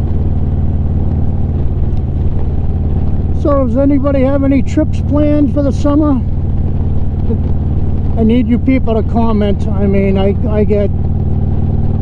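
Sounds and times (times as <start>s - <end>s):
motorcycle engine droning: 0.0s - 12.0s.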